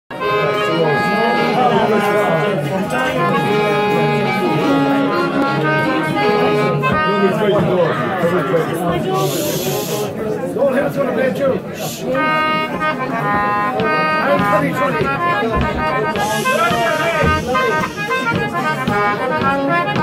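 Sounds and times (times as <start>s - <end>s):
fiddle and accordion folk tune: 0.1s - 10.2s, 11.6s - 20.0s
pub chatter: 0.1s - 20.0s.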